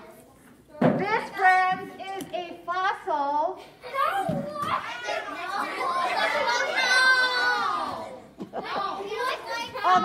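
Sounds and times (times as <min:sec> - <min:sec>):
children talking and exclaiming: 0:00.0 - 0:10.0.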